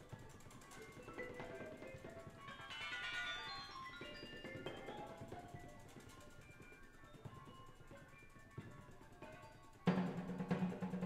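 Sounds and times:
bell-like ringing metal tones: 0:02.5 - 0:05.2.

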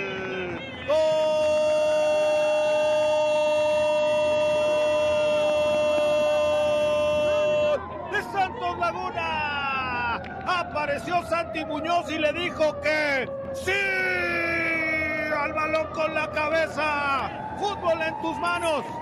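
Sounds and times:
stadium goal horn: 0:00.0 - 0:07.9.

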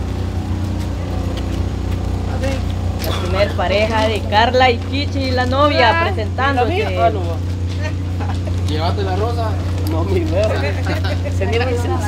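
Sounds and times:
low motor drone: 0:00.0 - 0:12.0
faint voices: 0:00.8 - 0:12.0.

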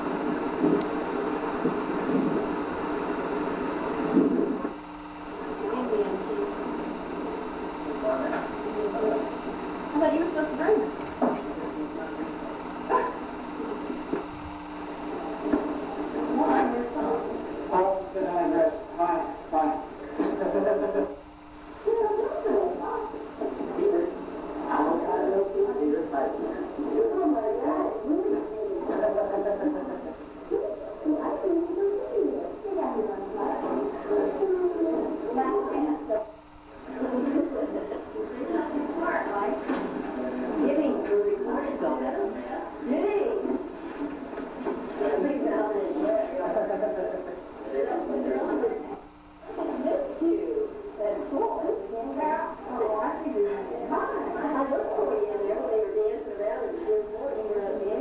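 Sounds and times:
muffled people talking: 0:00.0 - 0:58.0
muffled voices: 0:00.0 - 0:58.0
steady hum: 0:00.0 - 0:58.0.

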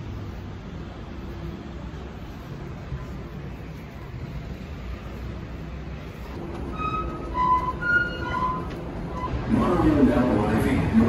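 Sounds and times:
low rumble of station: 0:00.0 - 0:11.0.

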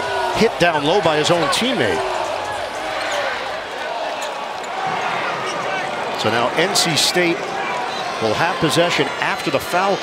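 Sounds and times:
arena crowd murmuring: 0:00.0 - 0:10.0.

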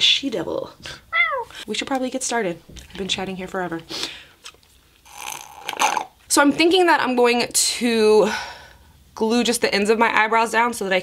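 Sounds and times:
slurping through a straw: 0:04.5 - 0:06.2.

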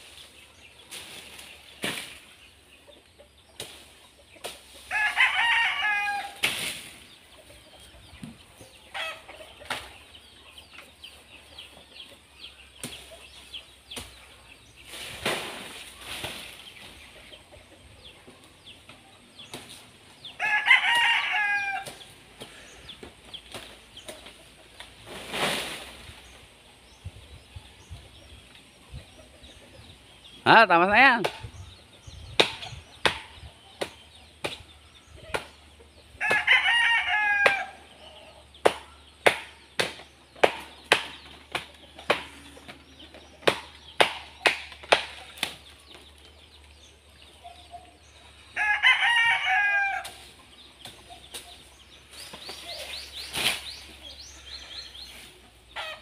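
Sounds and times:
rooster crowing: 0:04.9 - 0:06.4, 0:20.4 - 0:21.8, 0:36.2 - 0:37.8, 0:48.6 - 0:50.0
rustling: 0:51.3 - 0:54.0.

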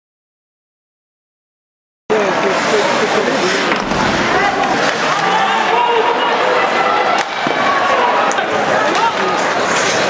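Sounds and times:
arena crowd din: 0:02.1 - 0:10.0
sharp crack: 0:03.5 - 0:05.8.

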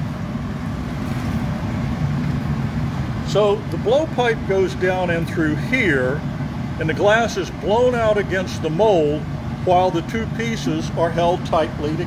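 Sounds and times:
gas furnace roar: 0:00.0 - 0:12.0
shop fans: 0:00.0 - 0:12.0.

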